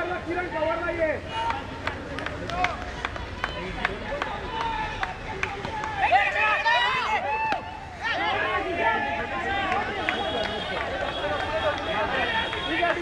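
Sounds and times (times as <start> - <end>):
players calling and shouting: 0.0 - 13.0.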